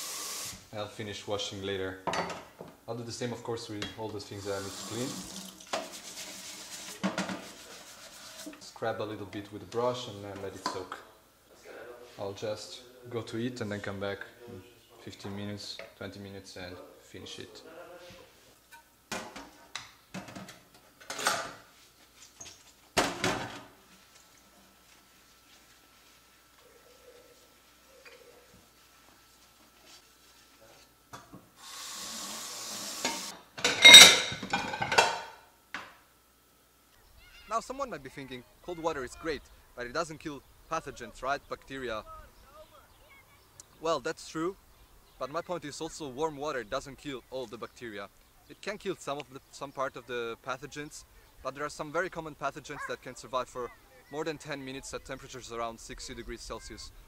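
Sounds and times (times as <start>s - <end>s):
tap water running: 0.0s - 0.7s, 4.2s - 8.6s, 31.6s - 34.3s
brush scrubbing frying pan: 4.3s - 8.7s, 24.0s - 30.9s
ceramic plate clattering: 33.6s - 35.4s.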